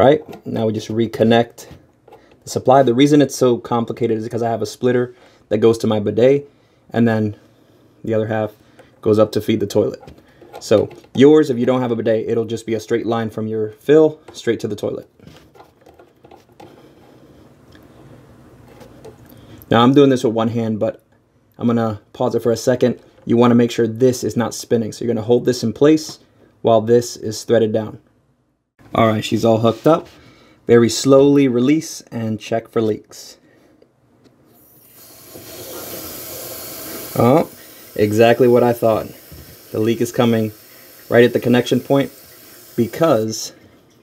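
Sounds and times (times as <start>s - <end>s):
faint steady hiss: 0.0s - 44.0s
water hissing through pipe: 34.6s - 43.6s.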